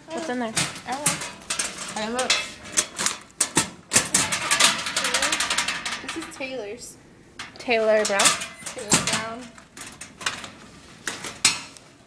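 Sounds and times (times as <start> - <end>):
metal locker door clattering open: 0.6 - 6.4, 7.9 - 11.8.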